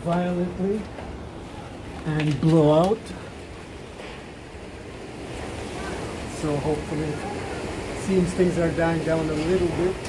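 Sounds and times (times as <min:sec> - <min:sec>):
strong wind roaring: 0:00.0 - 0:10.0.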